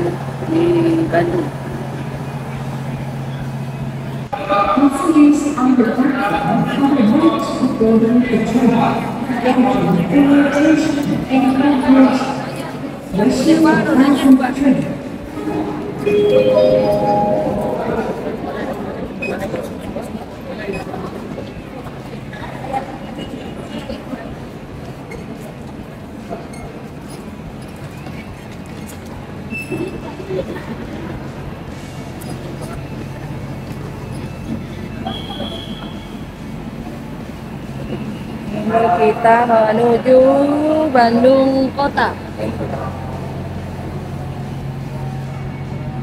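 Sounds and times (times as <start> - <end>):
passengers voices and movement: 0.0 - 46.0
brief electronic beeps: 15.4 - 18.5
short rising chime: 15.4 - 18.8.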